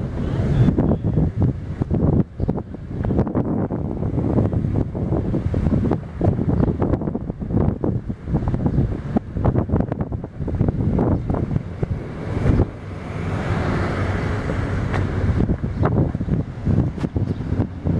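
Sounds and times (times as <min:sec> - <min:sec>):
wind buffeting microphone: 0:00.0 - 0:17.9.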